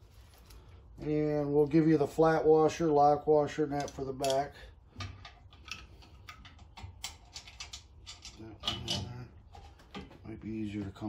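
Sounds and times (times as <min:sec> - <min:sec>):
small metal hardware clicking: 0:03.8 - 0:09.2.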